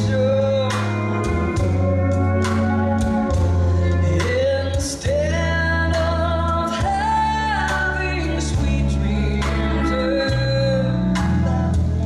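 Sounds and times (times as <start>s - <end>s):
woman singing: 0.0s - 2.1s, 4.0s - 11.5s
live band playing: 0.0s - 12.0s.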